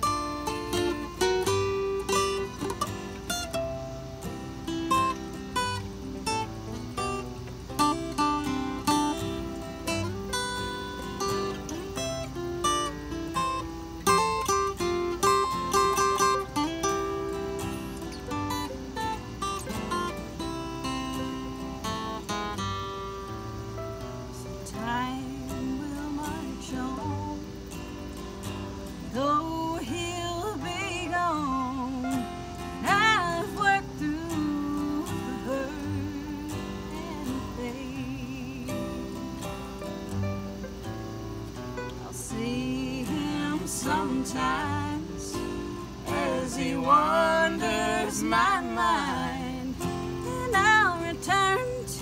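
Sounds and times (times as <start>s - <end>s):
acoustic guitars playing: 0.0s - 52.0s.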